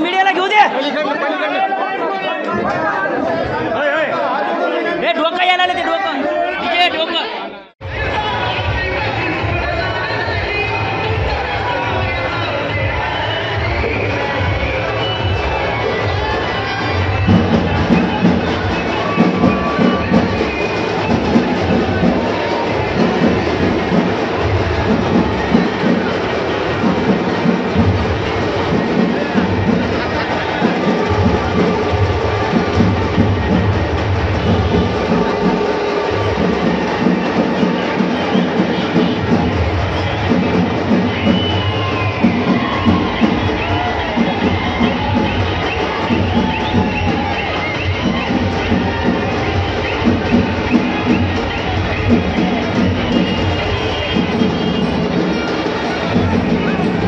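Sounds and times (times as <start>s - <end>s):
dense crowd noise: 0.0s - 57.0s
men talking and calling out: 0.0s - 57.0s
rhythmic drum beats: 7.8s - 57.0s.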